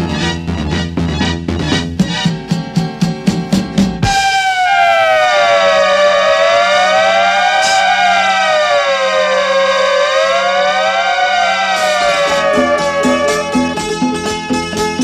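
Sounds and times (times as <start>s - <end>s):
music beat: 2.0s - 15.0s
low drone: 4.3s - 14.1s
sliding long tones: 4.4s - 14.0s.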